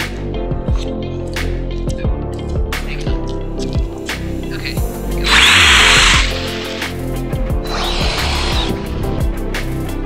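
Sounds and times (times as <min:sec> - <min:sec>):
toy truck motor whining: 0:05.2 - 0:06.9, 0:07.6 - 0:08.8.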